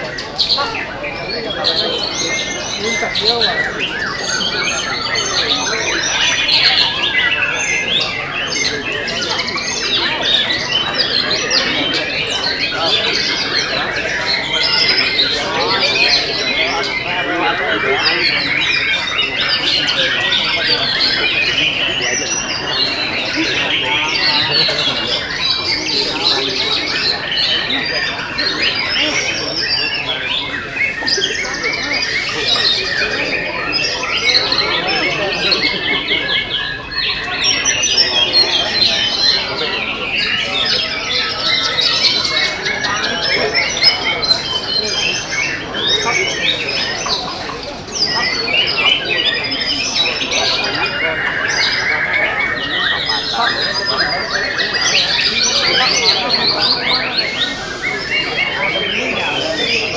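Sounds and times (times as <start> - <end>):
birds singing whistles and trills: 0.0 - 59.9
people's voices: 0.0 - 59.9.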